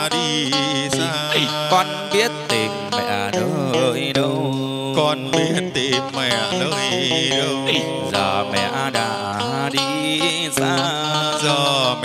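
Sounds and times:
beat: 0:00.0 - 0:10.8
wavering melody with vibrato: 0:00.0 - 0:12.0.

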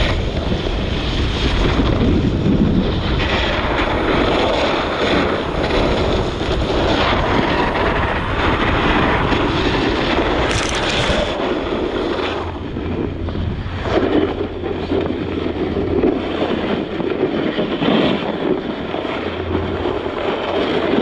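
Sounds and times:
snowboard edges scraping snow: 0:00.0 - 0:21.0
wind rushing over microphone: 0:00.0 - 0:21.0.

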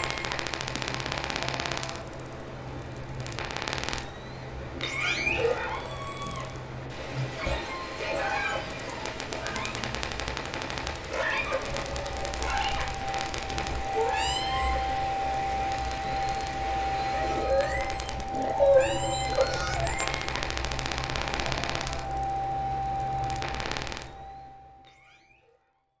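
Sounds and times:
rapid clicks: 0:00.0 - 0:04.1, 0:08.6 - 0:24.2
steady low hum: 0:00.0 - 0:24.9
held synth note: 0:11.1 - 0:25.3.

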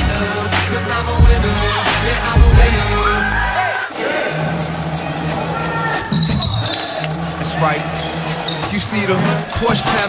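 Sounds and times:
players calling out: 0:01.6 - 0:10.0.

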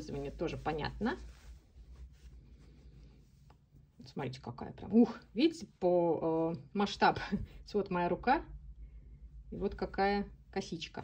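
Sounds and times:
soft yarn rustling: 0:00.0 - 0:11.0.

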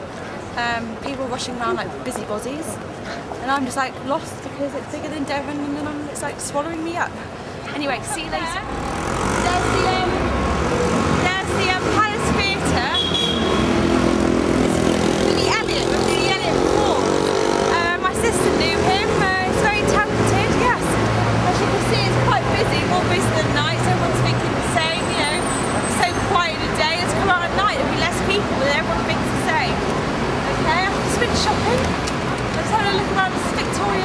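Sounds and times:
road traffic rumble: 0:00.0 - 0:34.0
people talking: 0:00.6 - 0:02.8, 0:03.4 - 0:08.7, 0:09.3 - 0:10.3, 0:11.2 - 0:13.0, 0:14.5 - 0:29.8, 0:30.5 - 0:31.9, 0:32.6 - 0:34.0.

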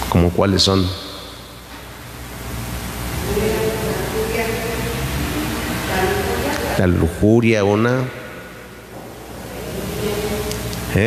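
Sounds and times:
distant congregation voices calling out: 0:00.4 - 0:11.0.

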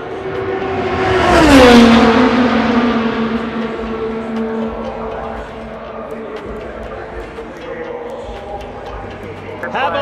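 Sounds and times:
pit lane din: 0:00.0 - 0:10.0
indistinct background voices: 0:03.3 - 0:10.0.

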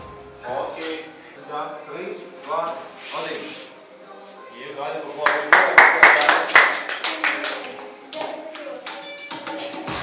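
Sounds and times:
small group clapping: 0:05.2 - 0:09.5.

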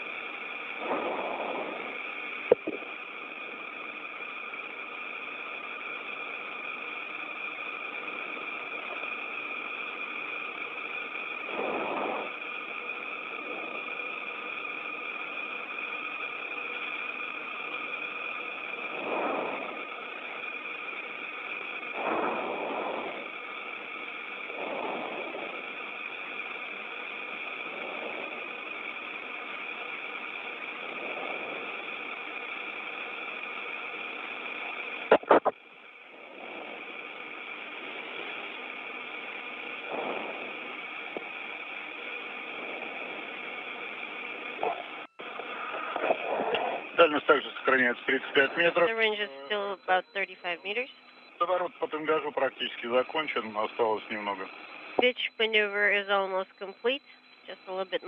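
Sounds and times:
radio channel hiss: 0:00.0 - 0:58.0
radio keying clicks: 0:35.1 - 0:35.5.

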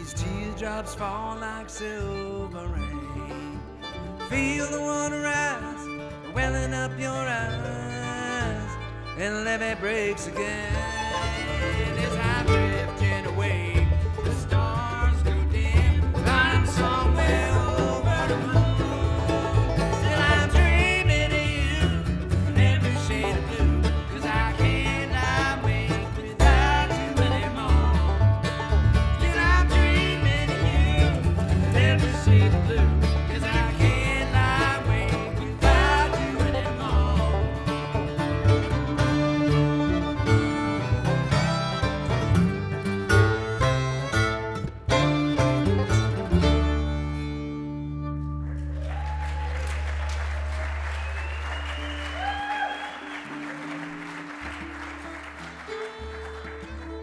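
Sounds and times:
acoustic guitar: 0:00.0 - 0:49.1, 0:51.0 - 0:57.0
banjo: 0:00.0 - 0:49.1, 0:51.6 - 0:57.0
upright bass: 0:00.0 - 0:57.0.

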